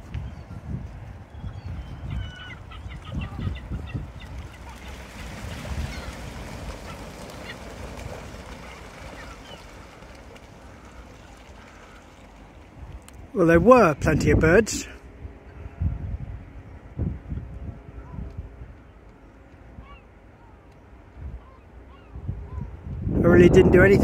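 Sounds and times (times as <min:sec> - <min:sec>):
gulls calling: 0:00.0 - 0:15.6, 0:17.8 - 0:22.8
rush of wings: 0:01.7 - 0:13.1.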